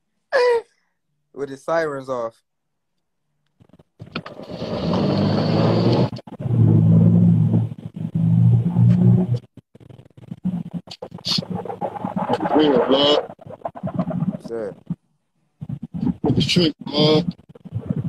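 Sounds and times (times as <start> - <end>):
muffled voices: 11.0 - 13.4, 16.0 - 17.4
clear speech: 12.3 - 13.2, 14.4 - 14.8, 16.3 - 17.4.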